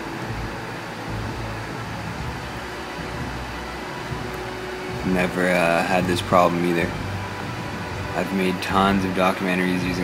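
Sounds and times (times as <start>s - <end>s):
fan hum and hiss: 0.0s - 10.0s.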